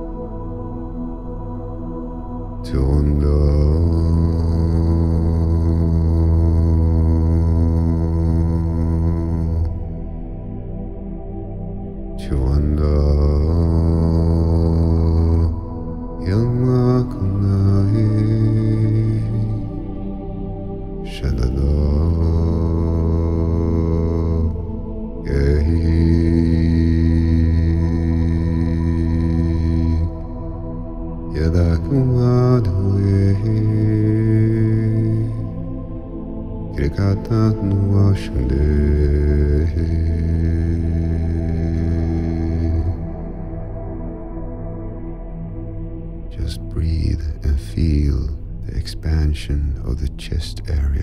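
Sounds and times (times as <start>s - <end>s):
ambient drone music: 0.0s - 51.0s
deep voice chanting low note: 0.0s - 51.0s.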